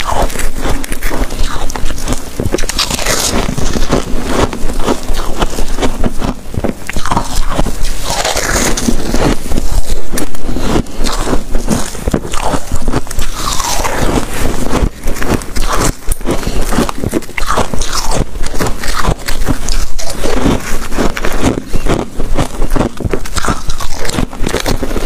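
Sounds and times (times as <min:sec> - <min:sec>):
chewing crunchy frost: 0:00.0 - 0:25.0.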